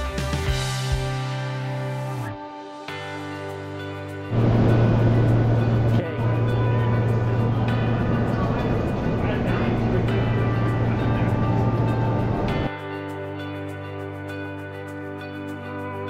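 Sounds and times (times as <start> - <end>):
background music: 0.0 - 16.0
train hum and rumble: 4.3 - 12.7.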